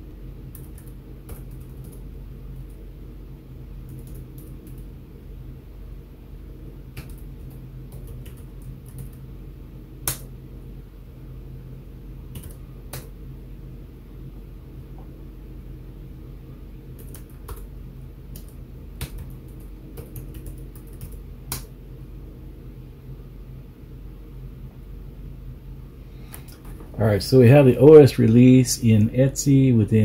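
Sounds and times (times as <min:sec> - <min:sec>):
steady low hum: 0:00.0 - 0:30.0
keyboard keys tapping: 0:18.3 - 0:21.7.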